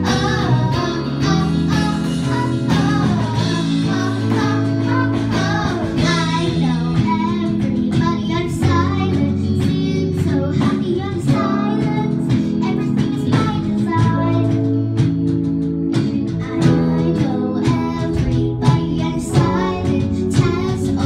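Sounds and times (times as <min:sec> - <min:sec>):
child singing into a microphone: 0:00.0 - 0:15.0, 0:16.0 - 0:21.0
guitar holding steady chords: 0:00.0 - 0:21.0.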